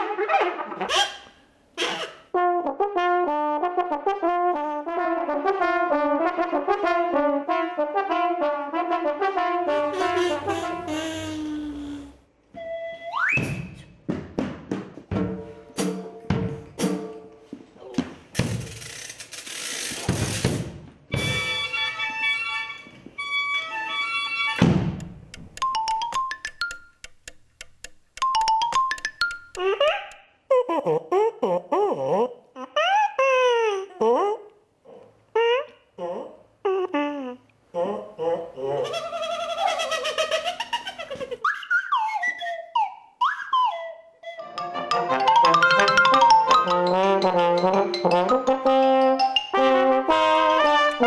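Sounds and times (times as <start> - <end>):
kazoo humming: 0.8 - 2.4, 9.8 - 13.2
ratchet clicking rattle: 18.4 - 20.4.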